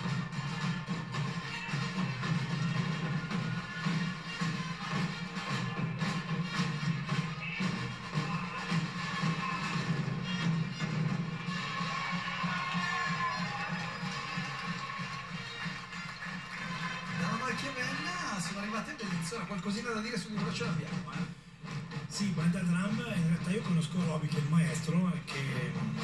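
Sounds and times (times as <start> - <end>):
marching drums playing: 0.0 - 26.0.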